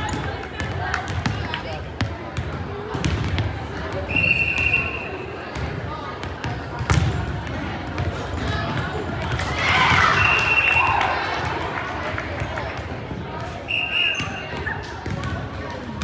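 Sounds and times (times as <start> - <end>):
players chattering: 0.0 - 16.0.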